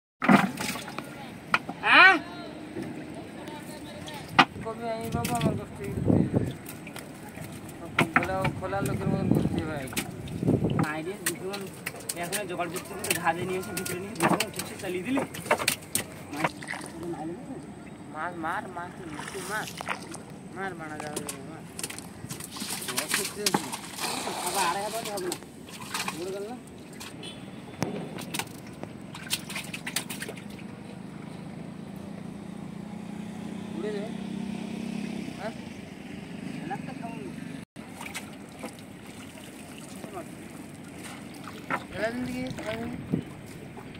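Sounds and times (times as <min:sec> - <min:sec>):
boat motor humming: 0:26.4 - 0:43.9.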